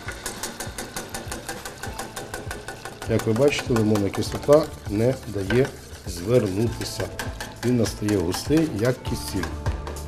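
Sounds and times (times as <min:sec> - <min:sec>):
whisk clicking against metal pot: 0:00.0 - 0:10.0.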